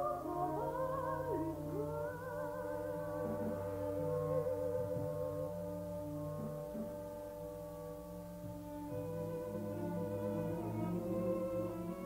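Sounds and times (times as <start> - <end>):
low orchestral notes: 0.0 - 12.0.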